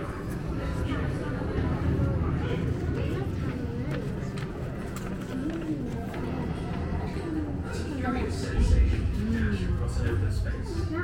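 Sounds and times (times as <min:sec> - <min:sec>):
indistinct voices: 0:00.0 - 0:11.0
steady low rumble: 0:08.4 - 0:11.0.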